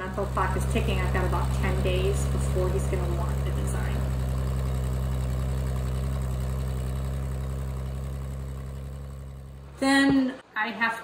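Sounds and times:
tractor engine running: 0.0s - 10.2s.

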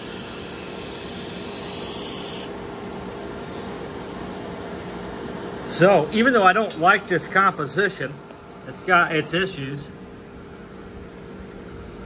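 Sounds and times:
gas torch flame hissing: 0.0s - 2.6s
low workshop hum: 0.0s - 12.0s.

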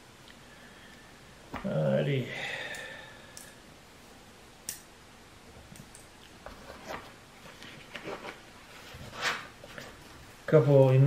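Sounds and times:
light clicks of small tools: 2.7s - 3.6s
rustling: 6.2s - 11.0s.

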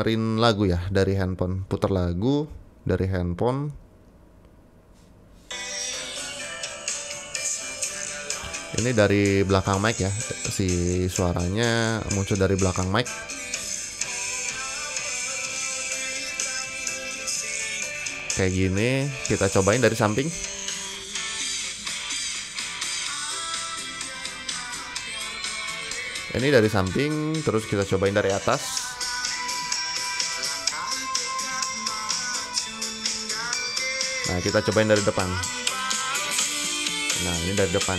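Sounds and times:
song from phone speaker: 5.4s - 37.9s.

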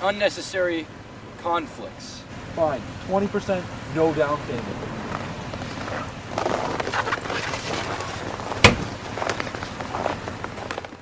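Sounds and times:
steady outdoor hiss: 0.0s - 10.8s
footsteps on packed snow: 5.1s - 11.0s.

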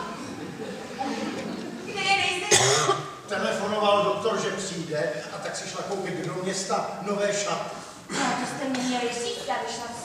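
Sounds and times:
loud cough: 2.5s - 3.1s.

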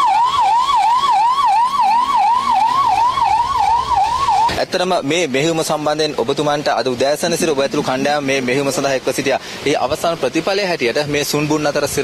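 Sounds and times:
siren yelping: 0.0s - 4.6s.

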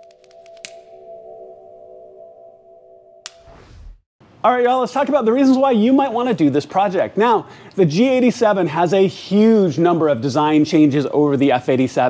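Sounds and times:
sustained chord: 0.0s - 3.4s.

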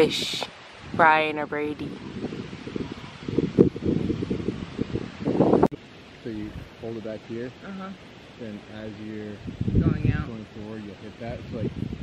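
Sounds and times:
wind buffeting microphone: 0.0s - 7.4s, 8.4s - 12.0s.

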